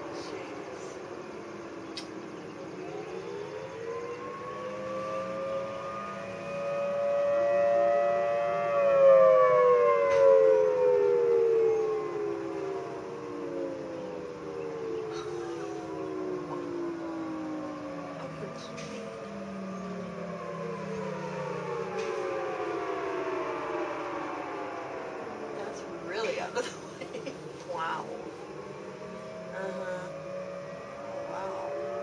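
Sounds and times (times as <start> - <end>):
distant siren: 0.0 - 32.0
warning siren wailing: 0.0 - 32.0.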